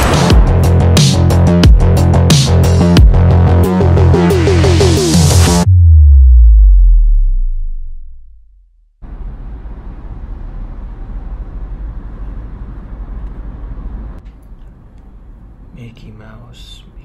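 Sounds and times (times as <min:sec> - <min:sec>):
deep tone sliding down: 0:04.7 - 0:10.6.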